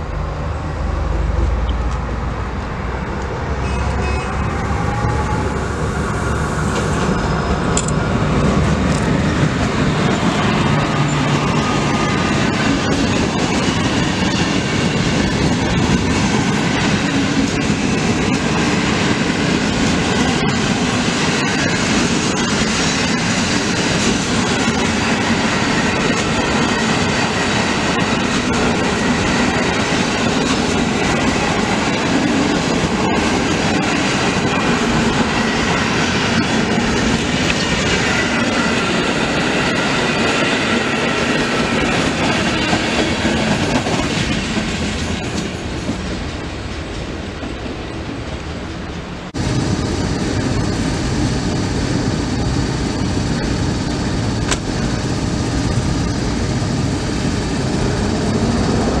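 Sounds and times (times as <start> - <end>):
deep train rumble: 0.0 - 59.0
train wheels rumbling on rails: 0.0 - 59.0
clickety-clack over rail joints: 7.7 - 47.8, 52.4 - 56.3.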